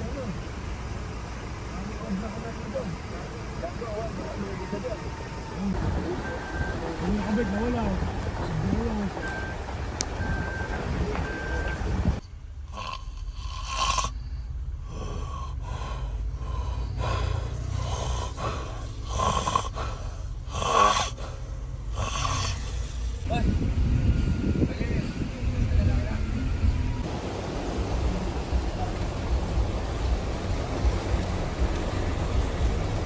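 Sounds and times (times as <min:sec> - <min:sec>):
car engine and road rumble: 0:00.0 - 0:33.0
short beeps: 0:09.1 - 0:09.6, 0:10.2 - 0:11.9
man snoring: 0:12.7 - 0:14.2, 0:17.1 - 0:21.2, 0:21.9 - 0:23.0.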